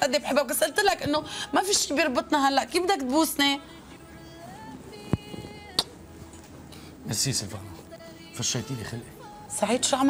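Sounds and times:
kiss smacks: 5.2s - 6.0s.

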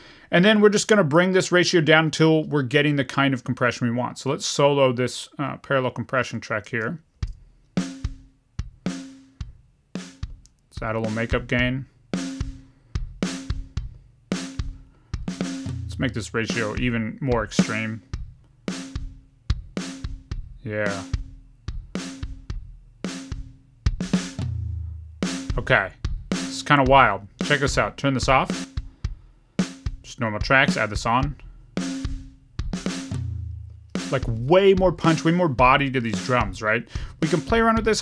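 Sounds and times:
compressed drum beat: 7.1s - 38.0s
deep kick drum thumps: 7.2s - 8.8s, 9.4s - 38.0s
low drum hit ringing: 15.2s - 17.1s, 24.4s - 26.3s, 32.6s - 35.0s.

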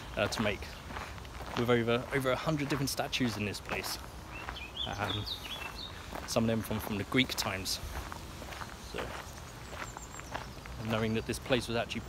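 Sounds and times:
soft footsteps: 0.0s - 11.8s.

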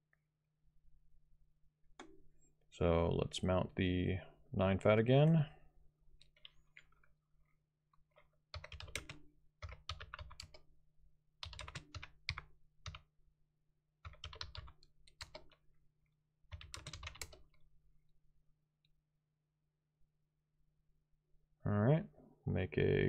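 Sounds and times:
computer keyboard typing: 8.5s - 10.6s, 11.4s - 13.0s, 14.0s - 15.6s, 16.5s - 17.6s.

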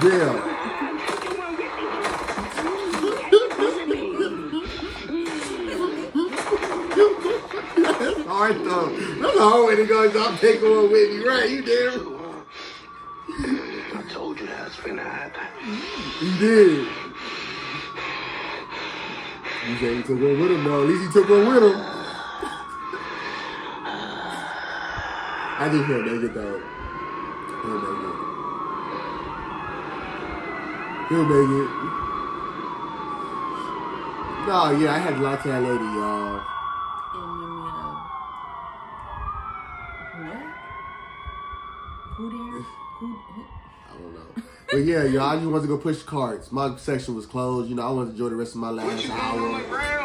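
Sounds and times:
sirens wailing: 0.0s - 50.0s.

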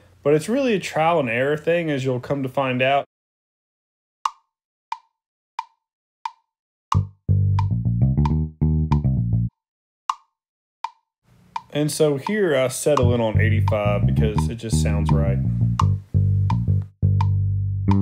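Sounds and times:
metronome ticks: 4.3s - 9.5s, 10.1s - 18.0s
electric bass line: 6.9s - 9.5s, 13.0s - 18.0s.

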